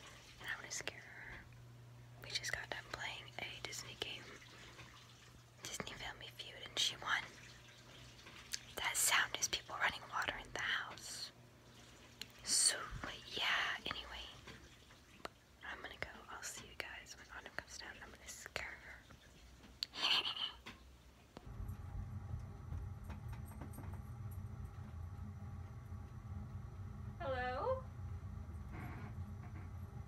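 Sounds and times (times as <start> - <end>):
girl whispering: 19.8 - 20.7.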